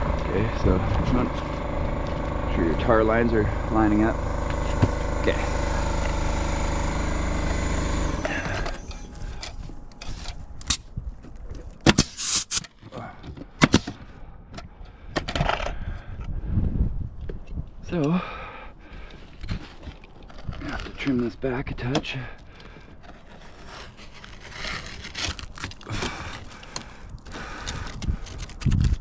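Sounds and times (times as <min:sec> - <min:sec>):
roofing nailer firing: 0:00.0 - 0:09.4, 0:11.8 - 0:12.7
steady machine drone: 0:00.0 - 0:11.3
taps and scrapes on shingles: 0:04.4 - 0:05.2, 0:07.4 - 0:15.5, 0:19.0 - 0:29.0.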